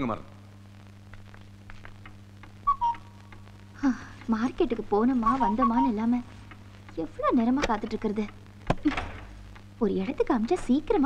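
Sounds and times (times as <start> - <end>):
steady low hum: 0.0 - 11.0
faint ticks: 1.0 - 8.9
two-note whistle: 2.7 - 3.1.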